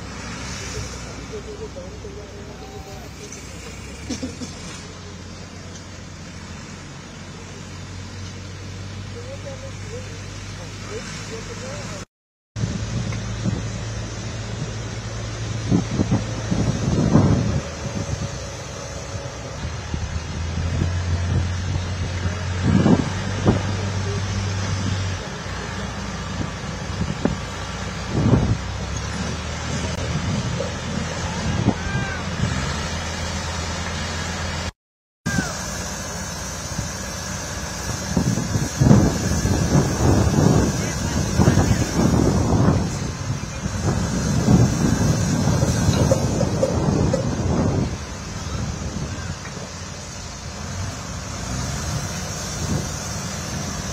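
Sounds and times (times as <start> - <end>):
heavy machine engine humming: 0.0 - 12.0, 12.6 - 34.7, 35.3 - 53.9
wind on microphone: 12.6 - 25.2, 26.3 - 32.8, 37.9 - 51.6
knocks and clanks: 45.5 - 48.0.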